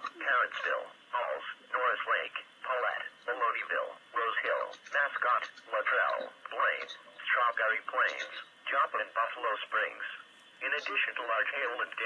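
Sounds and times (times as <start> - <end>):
automated voice over radio speaker: 0.0 - 12.0.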